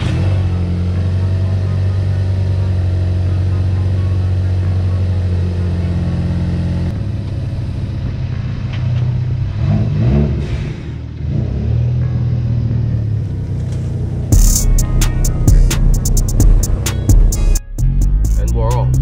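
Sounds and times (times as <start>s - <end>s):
car engine idling: 0.0s - 19.0s
engine revving: 0.0s - 19.0s.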